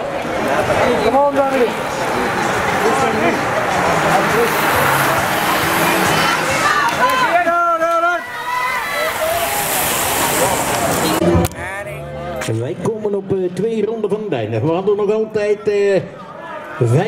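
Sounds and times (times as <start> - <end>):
bicycles whooshing past: 0.0 - 12.0
people shouting: 1.7 - 11.2.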